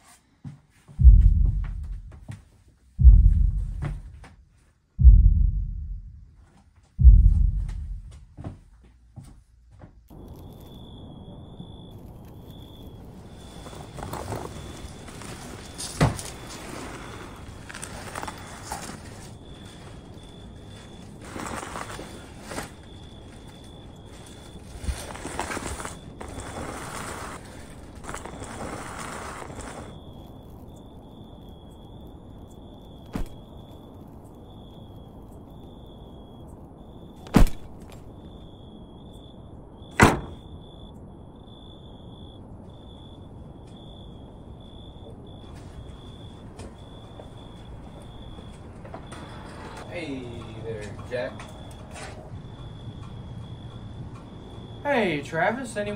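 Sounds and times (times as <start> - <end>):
low background rumble: 1.0 - 2.3, 3.0 - 4.3, 5.0 - 6.4, 7.0 - 8.8
plastic garbage bag rustling: 13.2 - 30.0.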